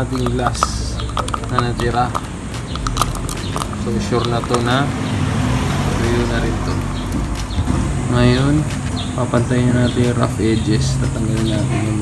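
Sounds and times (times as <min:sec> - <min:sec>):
stick tapping hardened resin: 0:00.0 - 0:04.9.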